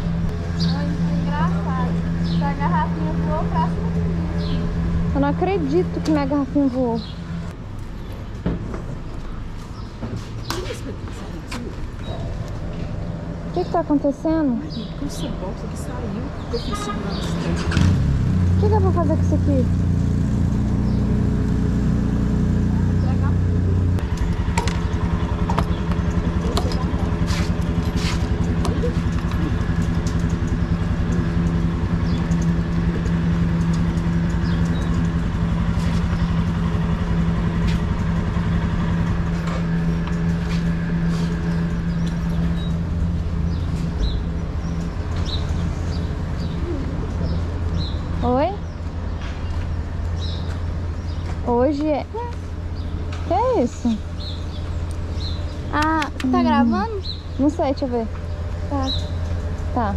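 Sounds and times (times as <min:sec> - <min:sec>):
motorcycle engine idling: 0:18.4 - 0:49.1.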